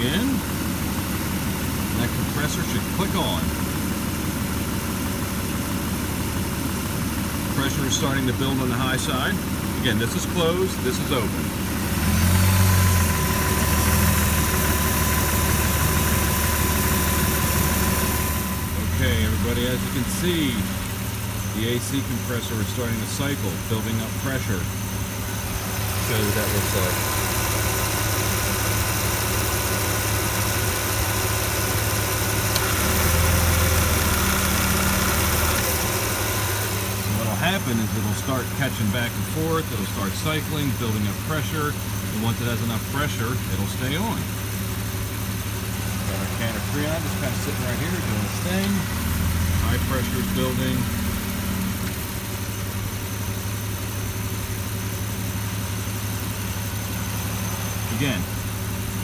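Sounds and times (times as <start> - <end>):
car engine idling: 0.0 - 59.0
compressor clutch click: 32.4 - 33.3.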